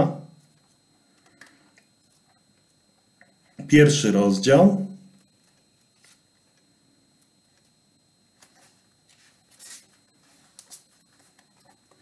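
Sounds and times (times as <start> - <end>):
paper pages rustling: 5.4 - 6.2, 8.4 - 12.0.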